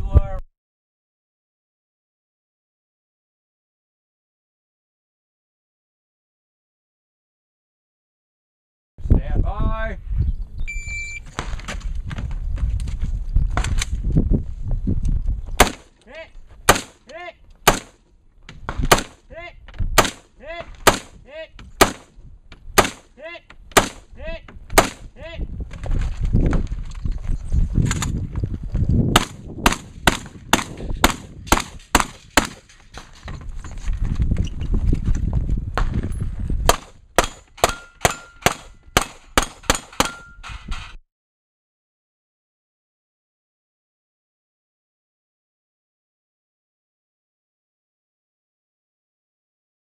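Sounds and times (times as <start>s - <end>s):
rifle gunshots: 15.6s - 15.9s, 16.7s - 17.0s, 17.6s - 18.0s, 18.8s - 19.2s, 20.0s - 21.2s, 21.8s - 22.1s, 22.8s - 23.1s, 23.7s - 24.1s, 24.8s - 25.1s, 29.1s - 32.6s, 36.7s - 40.2s
steel targets ringing: 37.2s - 40.5s.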